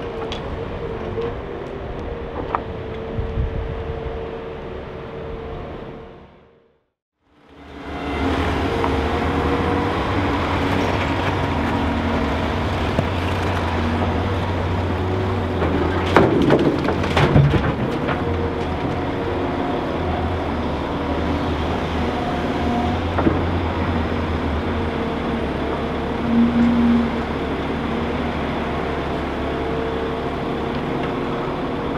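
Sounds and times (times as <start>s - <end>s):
diesel engines droning: 0.0s - 31.9s
soil and stones rattling into steel bed: 10.5s - 19.6s.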